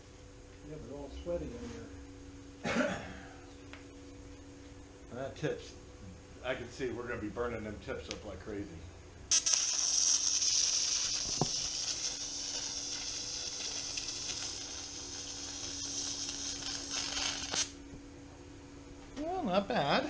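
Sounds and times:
welding arc crack: 0:09.3 - 0:17.8
welding arc hissing: 0:09.3 - 0:17.9.

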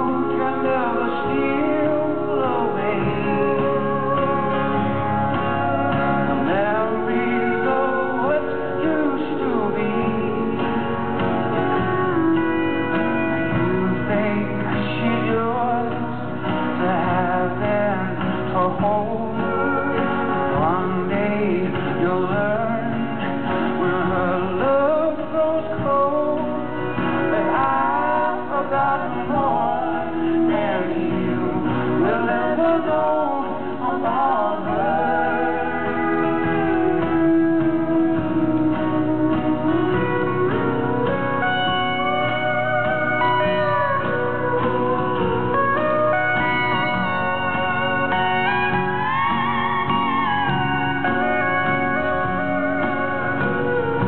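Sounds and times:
women singing harmony: 0:00.0 - 0:10.5, 0:26.8 - 0:37.5
man singing lead: 0:00.0 - 0:41.5
strummed acoustic guitar: 0:00.0 - 0:54.0.

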